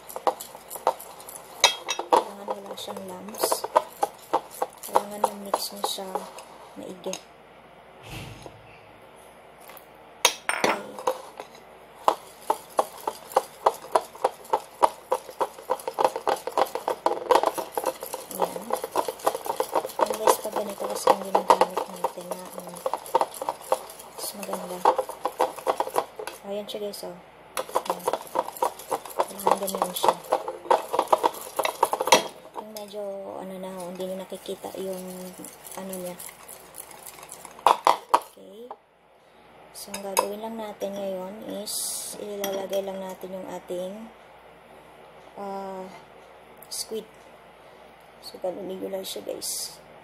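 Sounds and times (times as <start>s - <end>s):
utensil beating batter in bowl: 0.0s - 7.2s, 10.8s - 38.8s.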